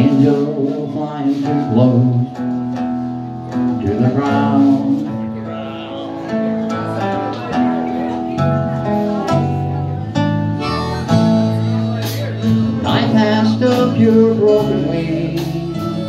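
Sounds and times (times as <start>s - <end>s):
bass: 0.0s - 16.0s
drums: 0.0s - 16.0s
electric guitar: 0.0s - 16.0s
nylon-string acoustic guitar: 0.0s - 16.0s
harmonica holding notes: 10.4s - 12.2s, 15.7s - 16.0s.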